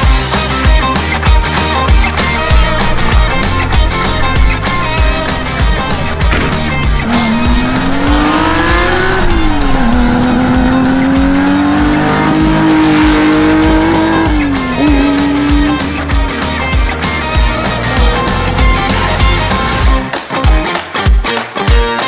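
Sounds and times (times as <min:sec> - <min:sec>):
rock music with steady beat: 0:00.0 - 0:22.0
car engine revving: 0:01.6 - 0:19.8.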